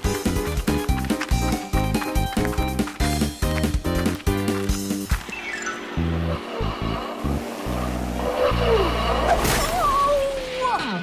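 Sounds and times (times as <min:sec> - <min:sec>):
background music: 0:00.0 - 0:09.6.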